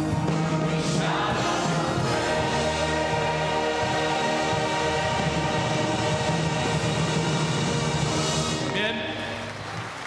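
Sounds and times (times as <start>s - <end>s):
worship band and singers: 0.0s - 8.8s.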